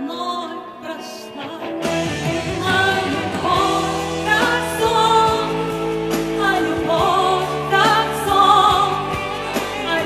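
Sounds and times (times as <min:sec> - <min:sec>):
woman singing into a microphone: 0:00.0 - 0:10.0
instrumental accompaniment: 0:01.1 - 0:10.0.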